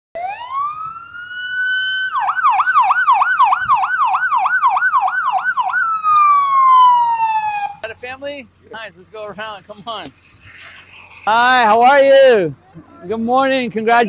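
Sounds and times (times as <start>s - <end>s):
electronic vehicle siren wailing: 0.2s - 7.9s.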